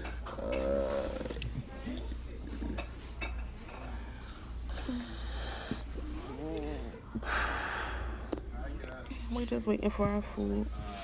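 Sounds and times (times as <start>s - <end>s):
dishes and cutlery clinking: 0.0s - 0.9s, 2.4s - 4.0s
low background hum: 0.0s - 11.0s.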